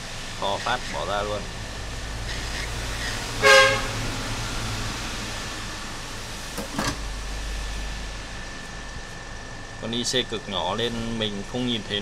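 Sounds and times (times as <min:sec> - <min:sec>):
short horn toot: 0:03.4 - 0:04.0.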